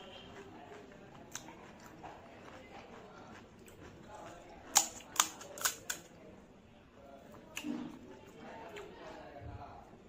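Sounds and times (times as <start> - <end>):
fried shell cracking in fingers: 4.7 - 6.1.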